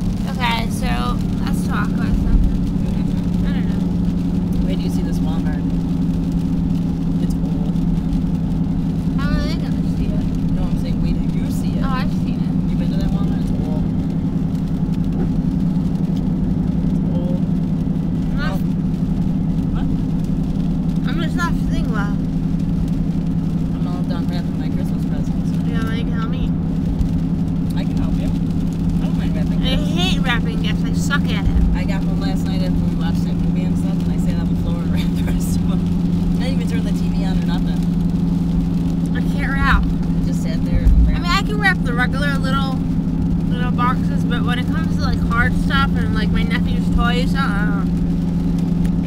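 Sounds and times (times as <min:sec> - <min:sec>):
vehicle engine and road noise: 0:00.0 - 0:49.0.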